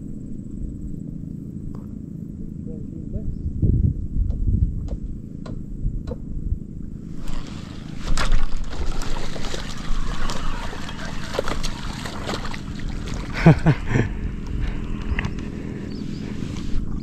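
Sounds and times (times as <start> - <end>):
low rumble: 0.0 - 17.0
water splashing and sloshing: 7.1 - 17.0.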